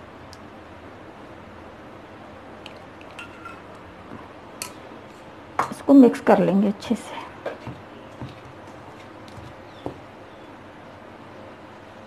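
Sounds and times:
utensils clinking against steel bowl: 0:03.1 - 0:03.7.

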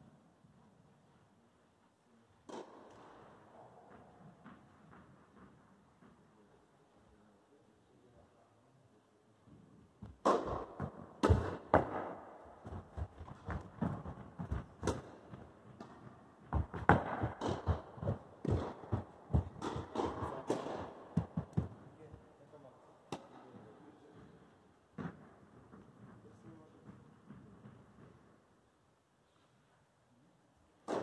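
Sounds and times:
racket strings striking ball: 0:10.0 - 0:21.8
ball bouncing on court: 0:10.0 - 0:21.9, 0:24.9 - 0:26.2
quick footsteps: 0:12.6 - 0:22.2.

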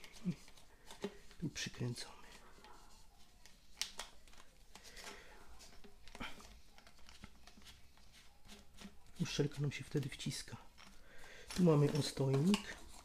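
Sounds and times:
plastic clicks and scrapes: 0:03.4 - 0:13.0.

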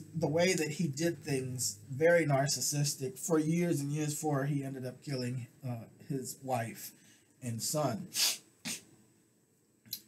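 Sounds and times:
man breathing: 0:06.9 - 0:07.4.

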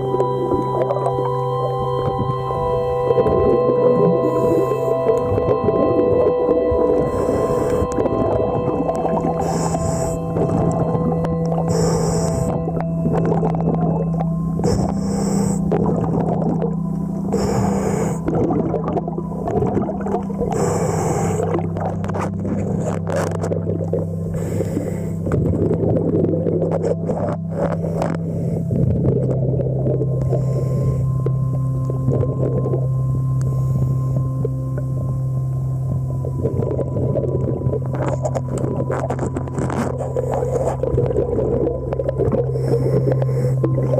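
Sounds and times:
rushing bubbling water: 0:00.0 - 0:35.2, 0:35.8 - 0:43.9
steady underwater droning tones: 0:00.0 - 0:43.9
scuba regulator hissing: 0:09.3 - 0:10.4, 0:11.6 - 0:12.6.

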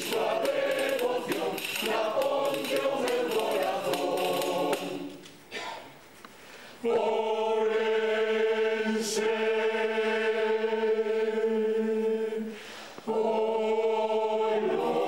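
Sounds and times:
mixed choir singing: 0:00.0 - 0:05.3, 0:06.8 - 0:15.0.

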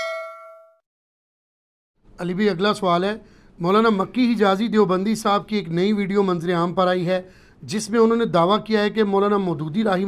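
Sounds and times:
bell-like notification ding: 0:00.0 - 0:00.8.

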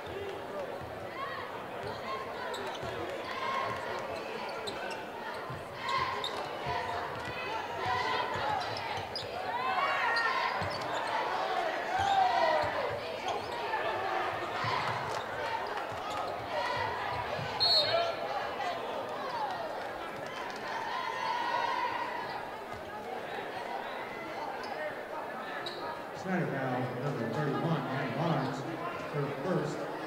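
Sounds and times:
voices echoing in gym: 0:00.0 - 0:30.0
referee's whistle blast: 0:17.6 - 0:18.1.

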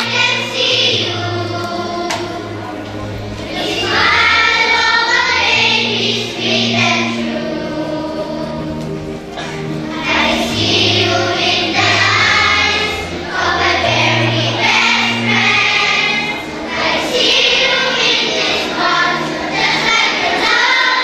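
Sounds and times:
children's choir singing: 0:00.0 - 0:21.0.

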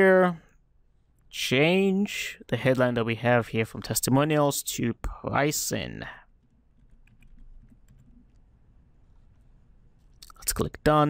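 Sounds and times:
keyboard typing: 0:06.4 - 0:08.4.

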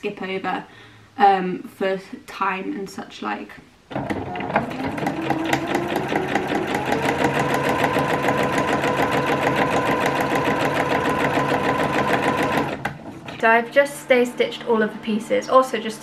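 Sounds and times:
sewing machine stitching: 0:03.9 - 0:14.0.

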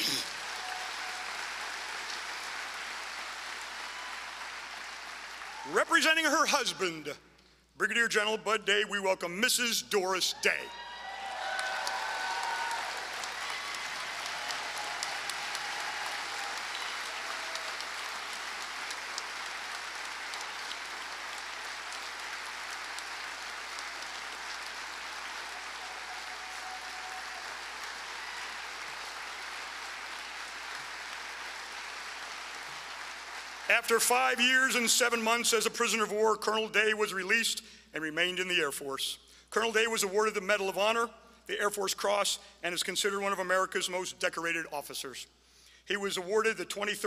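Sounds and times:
audience applauding: 0:00.0 - 0:06.2, 0:10.8 - 0:34.8.

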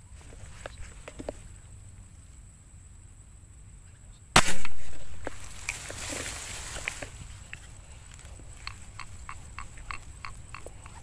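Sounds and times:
rustling in grass: 0:00.0 - 0:02.6, 0:04.4 - 0:11.0
air gun shot: 0:04.4 - 0:05.5.

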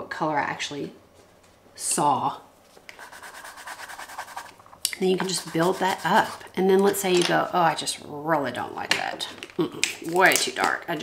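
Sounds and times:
coloured pencil scribbling on paper: 0:03.0 - 0:06.5.

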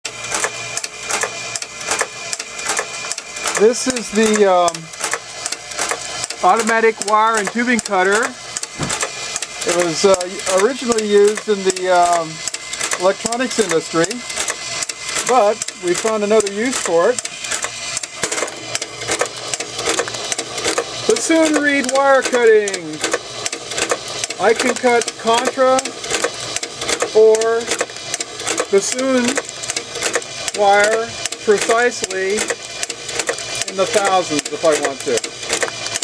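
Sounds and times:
motor hum: 0:00.0 - 0:36.0
cutter clacking: 0:00.1 - 0:36.0.

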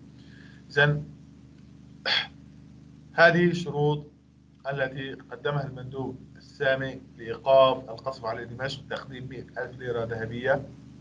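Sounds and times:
faint steady hum: 0:00.0 - 0:11.0
man speaking: 0:00.7 - 0:01.0, 0:02.1 - 0:02.3, 0:03.2 - 0:04.0, 0:04.7 - 0:10.7
man's sharp intake of breath: 0:02.1 - 0:02.3.

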